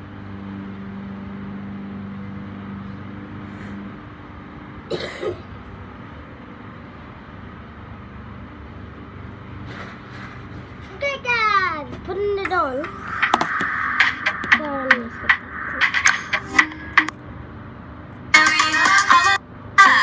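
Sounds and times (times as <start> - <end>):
low mechanical hum: 0.0 - 20.0
person coughing: 4.9 - 5.4.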